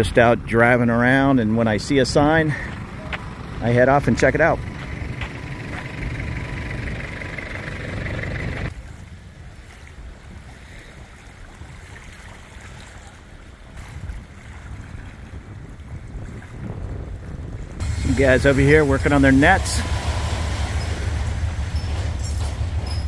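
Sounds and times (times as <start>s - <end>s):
wind rumble on microphone: 8.1s - 23.0s
steady hiss: 17.8s - 23.0s.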